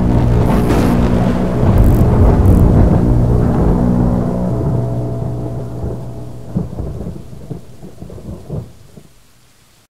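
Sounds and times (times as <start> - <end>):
thunder rumbling: 0.0 - 9.2
rain: 0.0 - 9.9.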